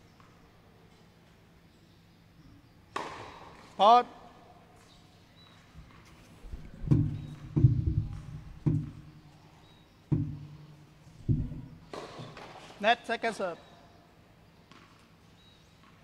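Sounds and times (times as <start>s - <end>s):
tennis ball bouncing on hard court: 2.9s - 3.7s, 6.8s - 9.2s, 10.1s - 12.6s, 14.7s - 15.0s.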